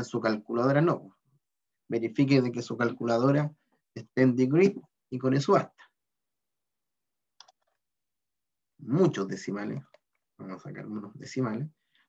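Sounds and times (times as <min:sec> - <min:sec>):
man speaking: 0:01.9 - 0:06.0, 0:08.8 - 0:11.8.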